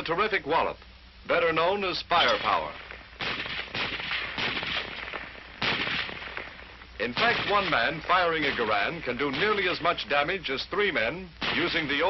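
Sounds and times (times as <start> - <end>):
rifle shots with echo: 2.2 - 10.2, 11.4 - 12.0.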